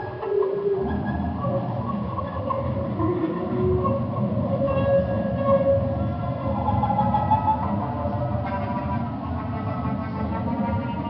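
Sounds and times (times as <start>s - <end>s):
bowed fiddle sustained notes: 0.0s - 11.0s.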